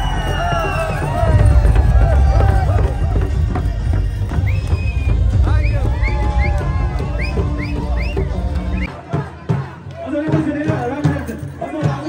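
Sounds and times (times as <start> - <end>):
rising whoop: 0.0 - 3.8, 4.4 - 8.4
barrel drums beating: 0.0 - 12.0
crowd singing and calling: 0.0 - 12.0.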